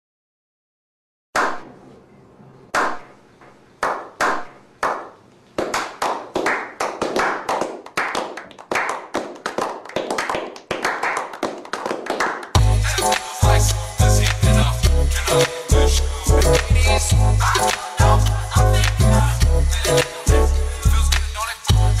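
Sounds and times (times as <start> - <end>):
people clapping: 2.7 - 3.1, 3.8 - 13.3, 18.8 - 19.2
music with heavy bass beat: 12.6 - 22.0.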